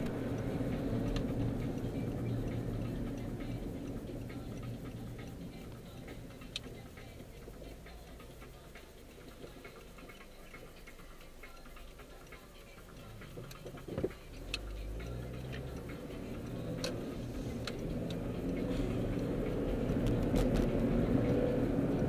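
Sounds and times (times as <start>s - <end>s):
engine and road rumble: 0.0s - 22.0s
turn signal ticking: 0.0s - 22.0s.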